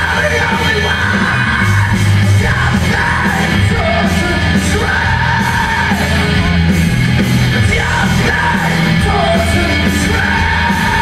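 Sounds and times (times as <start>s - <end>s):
live rock band playing loud: 0.0s - 11.0s.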